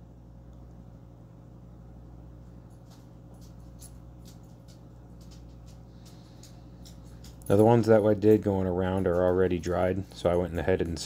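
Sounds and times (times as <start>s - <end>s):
low room hum: 0.0s - 11.0s
clicks and scratching on wood: 2.8s - 10.4s.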